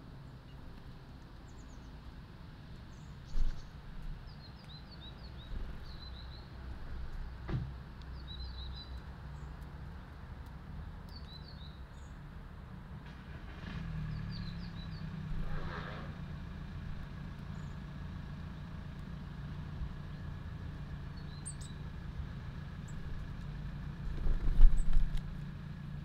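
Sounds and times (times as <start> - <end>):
distant engine traffic rumble: 0.0 - 26.0
bird chirps: 2.9 - 6.6, 8.1 - 9.6, 11.1 - 12.2, 14.1 - 15.2, 17.5 - 17.8, 21.1 - 21.8.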